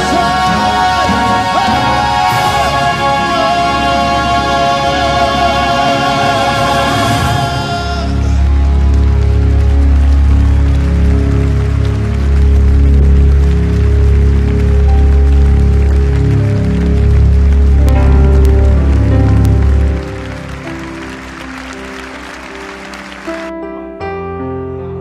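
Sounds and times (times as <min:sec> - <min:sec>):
worship band with heavy bass: 0:00.0 - 0:21.9
sustained keyboard chords: 0:00.0 - 0:25.0.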